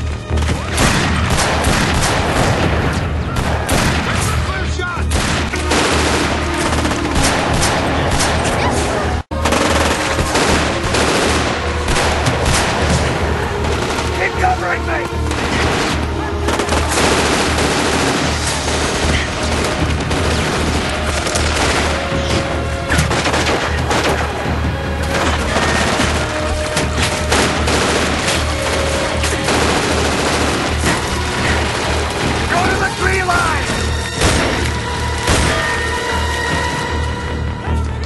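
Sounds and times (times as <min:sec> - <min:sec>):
rapid gunfire: 0:00.0 - 0:04.4, 0:05.1 - 0:08.7, 0:09.3 - 0:34.6
film music score: 0:00.0 - 0:38.0.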